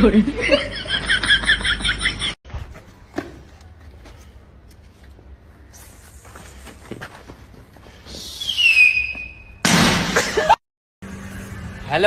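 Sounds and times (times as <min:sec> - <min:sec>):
firecracker hiss and whistle: 0:08.1 - 0:09.6
firecracker bang: 0:09.6 - 0:10.4.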